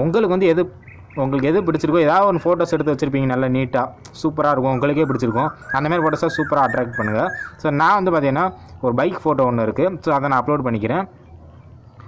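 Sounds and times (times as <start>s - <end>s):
man talking: 0.0s - 11.2s.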